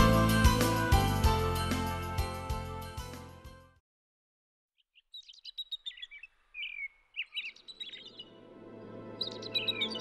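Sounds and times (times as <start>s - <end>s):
small birds chirping: 4.8s - 8.4s, 9.2s - 10.0s.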